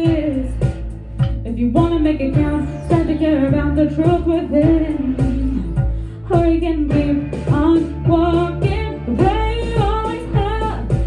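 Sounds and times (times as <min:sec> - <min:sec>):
backing music with steady beat: 0:00.0 - 0:11.0
woman singing into a microphone: 0:00.0 - 0:11.0.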